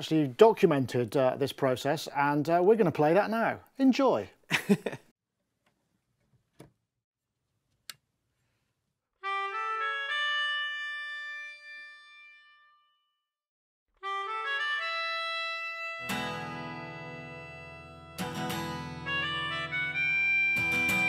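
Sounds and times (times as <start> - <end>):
melodica sustained chords: 9.2 - 13.0, 14.0 - 21.0.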